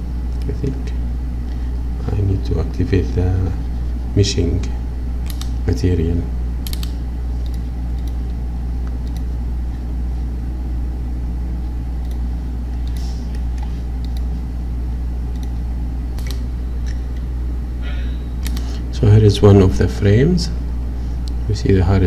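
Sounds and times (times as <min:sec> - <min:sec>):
steady low hum: 0:00.0 - 0:22.0
computer mouse clicks: 0:05.3 - 0:05.5, 0:06.6 - 0:08.2, 0:08.9 - 0:09.3, 0:12.8 - 0:14.3, 0:15.3 - 0:15.6, 0:18.4 - 0:18.7.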